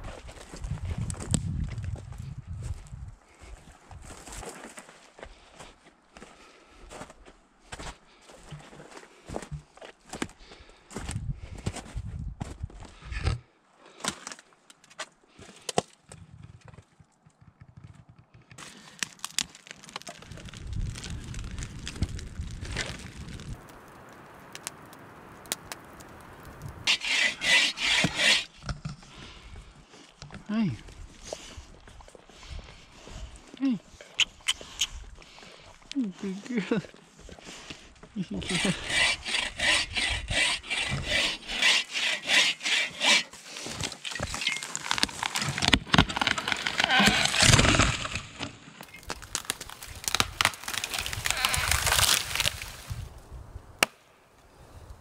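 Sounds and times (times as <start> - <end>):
footsteps crunching: 0.0 - 11.1, 42.8 - 53.0.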